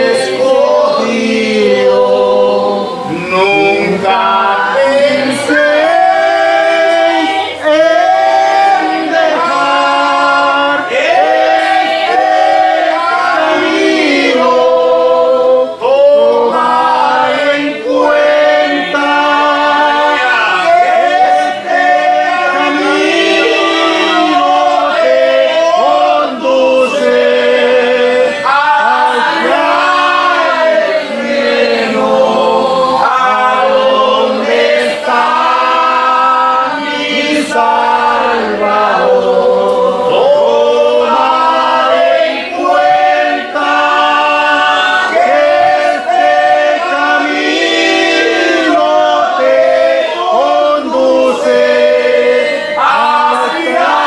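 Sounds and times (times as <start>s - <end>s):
congregation singing a hymn: 0.0s - 54.0s.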